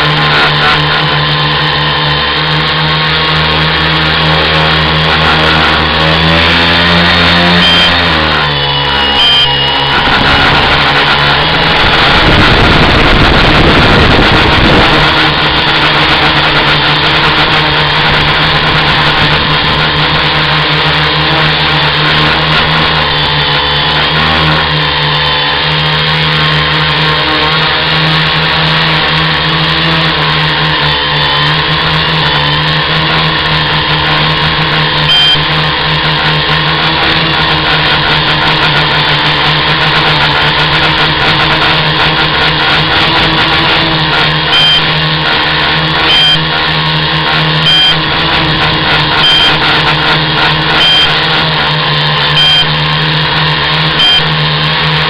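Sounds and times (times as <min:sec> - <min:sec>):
drone motors whining: 0:00.0 - 0:55.0
low rushing noise: 0:04.4 - 0:21.6.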